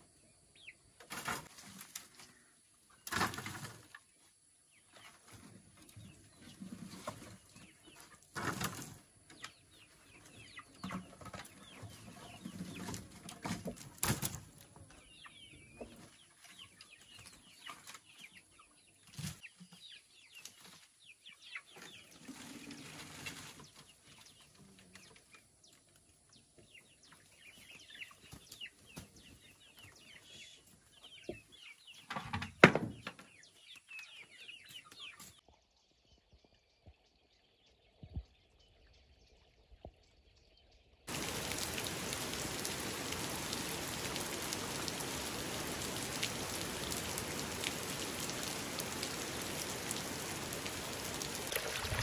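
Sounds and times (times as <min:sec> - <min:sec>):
chickens clucking: 0:00.0 - 0:35.5
rustle: 0:01.0 - 0:32.0, 0:41.1 - 0:52.0.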